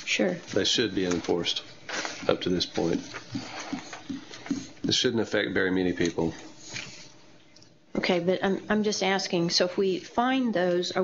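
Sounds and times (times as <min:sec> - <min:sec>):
person speaking: 0:00.0 - 0:06.5.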